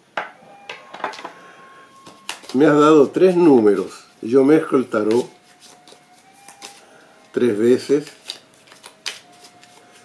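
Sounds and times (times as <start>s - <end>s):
cards being shuffled: 2.0s - 4.0s, 4.9s - 6.8s, 7.6s - 10.0s.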